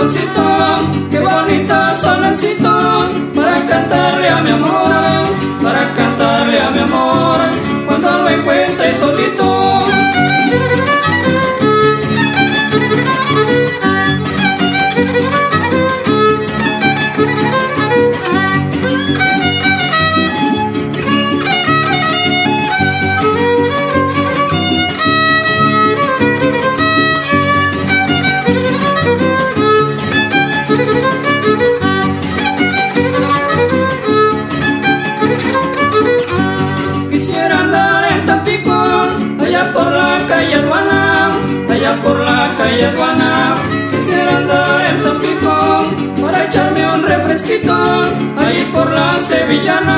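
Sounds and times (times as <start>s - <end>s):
guitars strumming: 0.0s - 49.9s
violin quick melodic runs: 9.9s - 37.0s.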